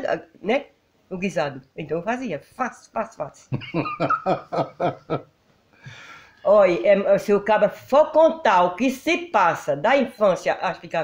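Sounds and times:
person laughing: 0:03.5 - 0:05.2
faint breath: 0:05.7 - 0:06.4.

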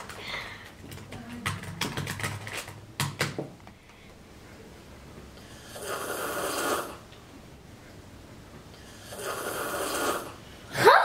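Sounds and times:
girl breathing heavily: 0:00.1 - 0:00.8.

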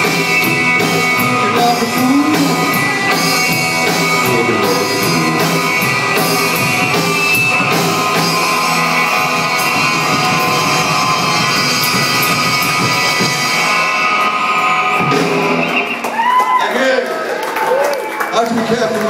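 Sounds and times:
rockabilly band playing: 0:00.0 - 0:19.0.

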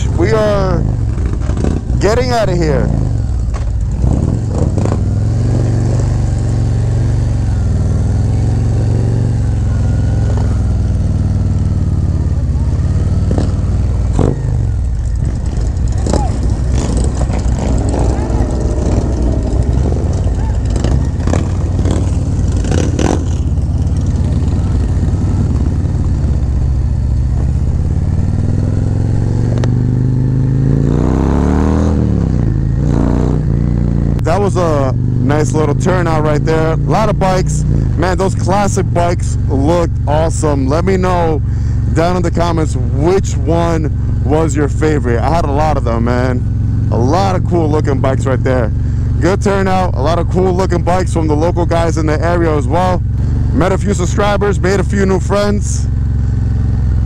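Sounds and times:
motorcycle engine running: 0:00.0 - 0:57.0.

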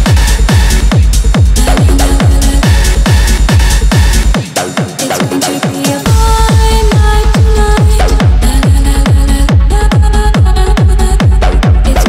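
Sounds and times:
fast kick drum beat: 0:00.0 - 0:12.0.

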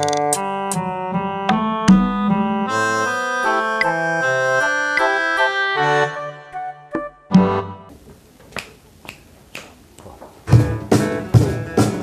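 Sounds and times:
finger snaps: 0:08.5 - 0:10.1
acoustic guitar: 0:10.5 - 0:12.0
cajon bass thumps: 0:10.5 - 0:12.0.

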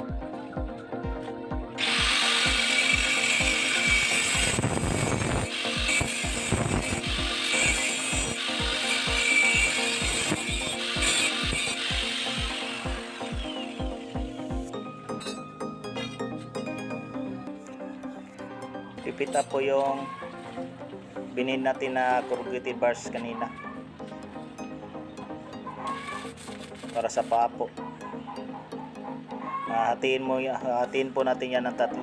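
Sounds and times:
background music with steady beat: 0:00.0 - 0:32.0
angle grinder cutting metal pipe: 0:01.8 - 0:16.2.

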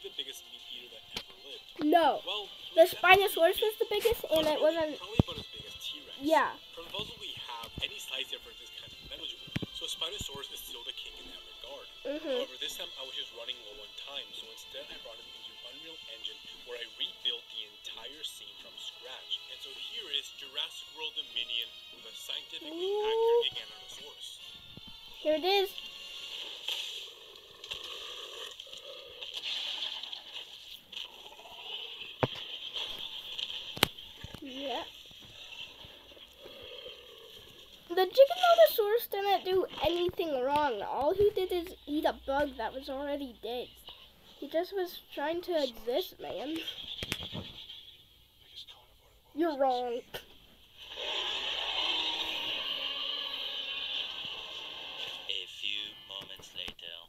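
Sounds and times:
small fire crackling: 0:00.0 - 0:20.5, 0:22.0 - 0:47.8, 0:49.2 - 0:56.8
dinosaur roar: 0:50.9 - 0:55.3.

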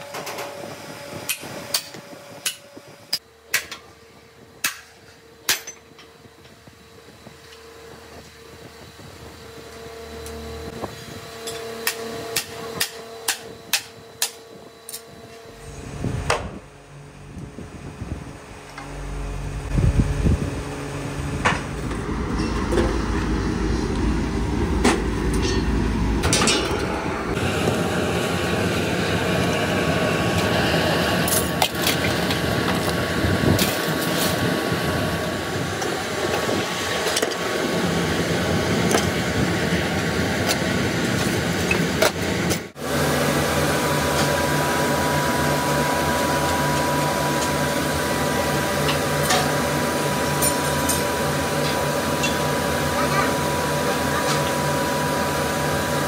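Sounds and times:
workshop machinery running: 0:00.0 - 0:56.0.

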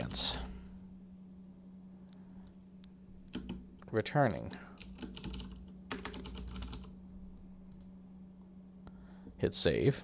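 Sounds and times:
faint steady hum: 0:00.0 - 0:10.0
computer keyboard typing: 0:03.3 - 0:03.6, 0:04.8 - 0:07.0.

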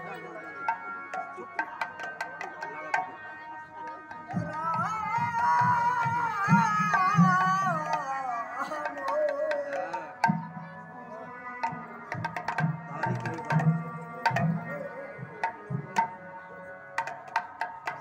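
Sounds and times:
person singing: 0:04.4 - 0:12.0, 0:12.8 - 0:16.9
barrel drums beating: 0:11.6 - 0:16.2.

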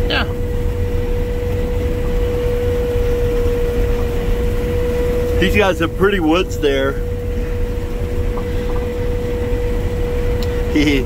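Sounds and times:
combine harvester rumble: 0:00.0 - 0:11.0
steady one-note whine: 0:00.0 - 0:11.0.

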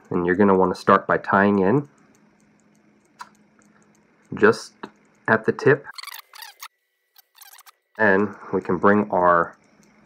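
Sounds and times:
thread rubbing and squeaking: 0:05.9 - 0:07.8.

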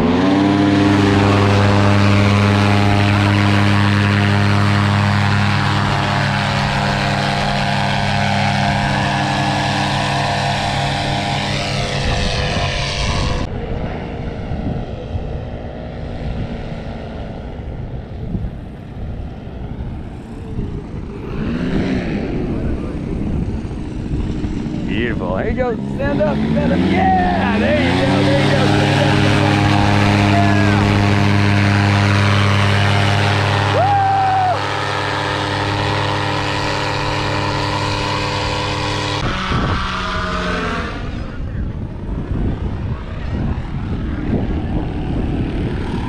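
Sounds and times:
distant paramotor engine: 0:00.0 - 0:46.0
paramotor engine drone: 0:00.0 - 0:46.0.

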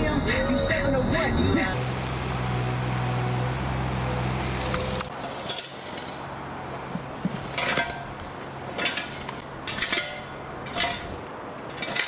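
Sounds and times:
vehicle engine drone: 0:00.0 - 0:05.2
road noise: 0:00.0 - 0:12.0.

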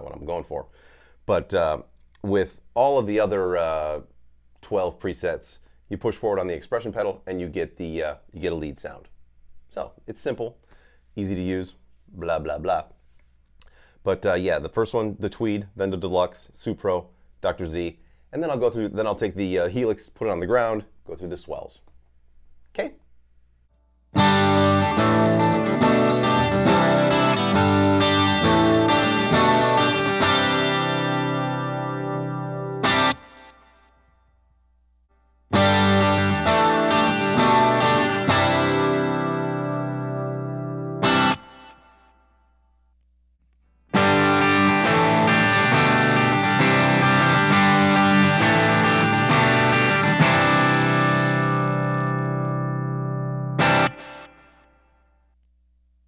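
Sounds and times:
electric guitar picked chords: 0:24.2 - 0:33.9, 0:35.5 - 0:42.1, 0:43.9 - 0:54.7.

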